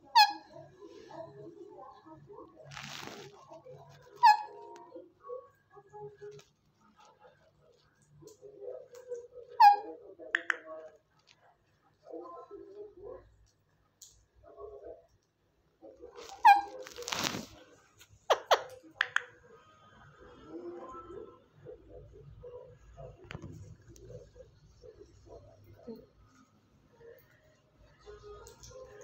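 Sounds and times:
parakeet squawk: 0:00.0 - 0:01.3, 0:04.0 - 0:05.0, 0:09.4 - 0:10.5, 0:16.2 - 0:17.5, 0:18.3 - 0:19.2.

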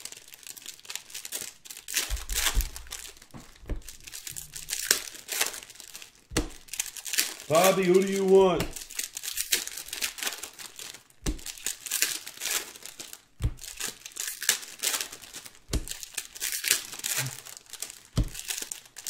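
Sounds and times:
foil packs crinkling and tearing: 0:00.0 - 0:19.0.

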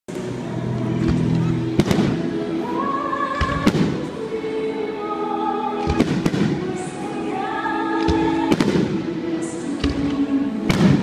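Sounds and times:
music: 0:00.1 - 0:11.0
fireworks bursting: 0:01.1 - 0:02.5, 0:03.3 - 0:04.2, 0:05.8 - 0:07.1, 0:08.0 - 0:11.0.

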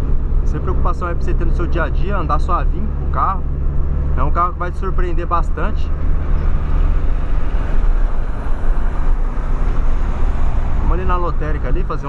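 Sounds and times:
car engine drone: 0:00.0 - 0:12.0.

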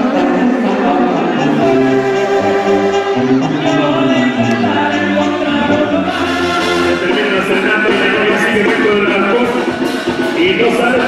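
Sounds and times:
choir singing held chords: 0:00.0 - 0:09.4.

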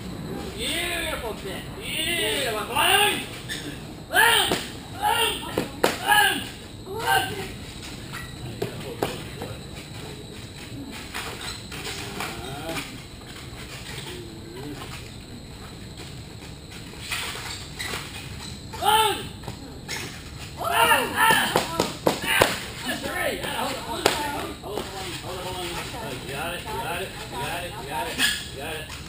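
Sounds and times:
people's voices: 0:00.2 - 0:15.7, 0:18.8 - 0:29.0
high-pitched exclamations: 0:02.8 - 0:07.5.

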